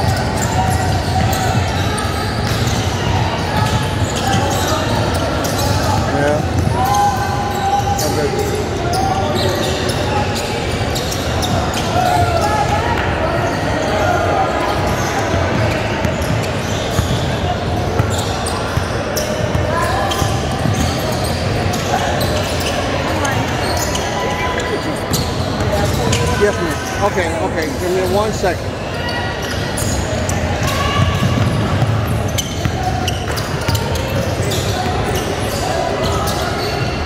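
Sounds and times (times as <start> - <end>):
indistinct echoing voices: 0.0 - 37.0.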